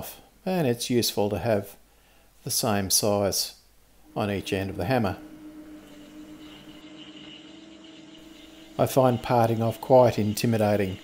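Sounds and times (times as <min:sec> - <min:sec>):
lathe motor humming: 0:04.0 - 0:11.0.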